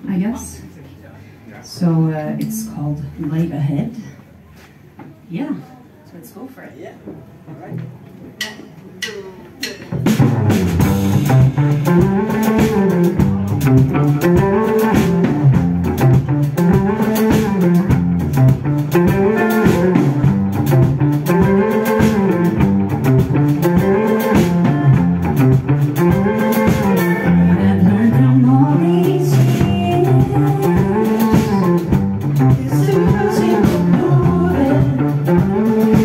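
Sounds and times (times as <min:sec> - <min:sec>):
live band with electric guitars: 0:09.5 - 0:36.0.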